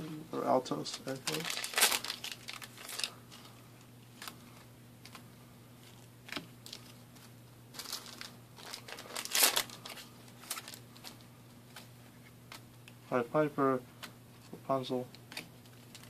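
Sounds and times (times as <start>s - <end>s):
faint low hum: 0.0s - 16.0s
foil wrappers and cards rustling: 0.6s - 12.6s, 15.2s - 16.0s.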